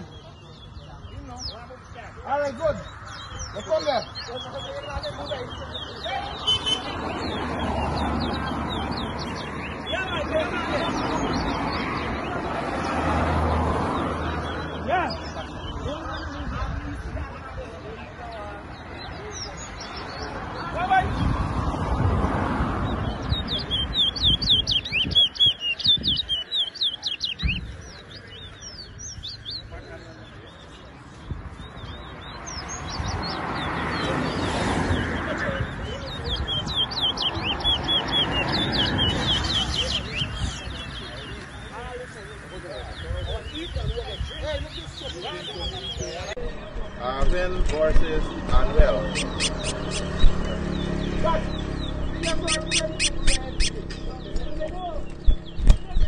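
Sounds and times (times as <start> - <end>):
bird singing whistled notes: 2.8 - 11.9, 22.9 - 29.7, 35.8 - 41.4, 49.0 - 54.3.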